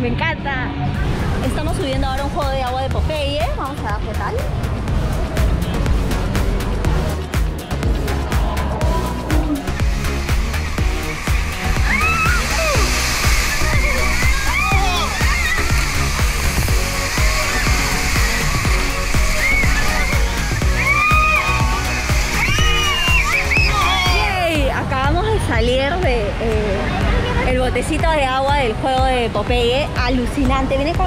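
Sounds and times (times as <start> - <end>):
background music with steady beat: 0.0 - 31.0
whitewater rushing and splashing: 4.1 - 28.0
excited voices calling out: 11.7 - 16.1, 19.0 - 24.7.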